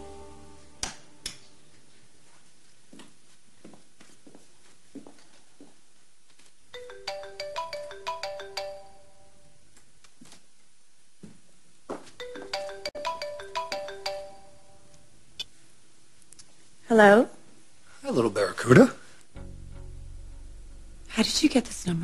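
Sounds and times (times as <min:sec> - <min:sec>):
melodic phone ringtone: 0:06.8 - 0:09.5, 0:12.2 - 0:14.9.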